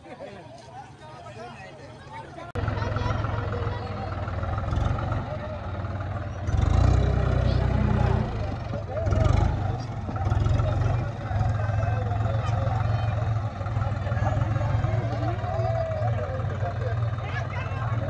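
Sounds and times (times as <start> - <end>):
tractor diesel engine revving: 2.6 - 18.0.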